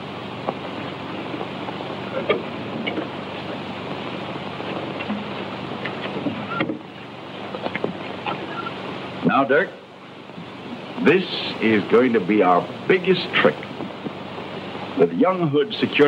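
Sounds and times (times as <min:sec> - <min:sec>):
film soundtrack hiss and crackle: 0:00.0 - 0:16.0
low hum: 0:00.0 - 0:16.0.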